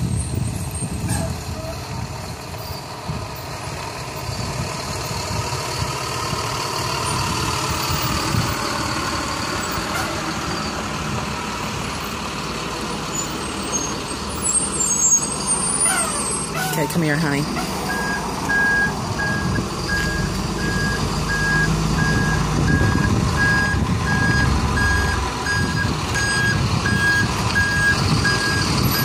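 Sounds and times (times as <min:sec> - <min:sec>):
bus engine running: 0:00.0 - 0:29.0
engine whine: 0:00.0 - 0:29.0.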